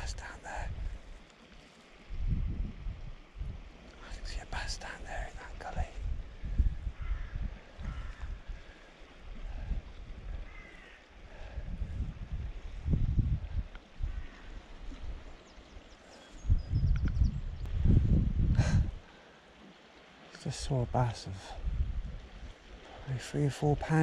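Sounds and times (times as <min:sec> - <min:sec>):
wind buffeting the microphone: 0:00.0 - 0:01.3, 0:01.9 - 0:19.1, 0:20.7 - 0:24.0
faint bird call: 0:07.0 - 0:08.4, 0:10.4 - 0:11.1.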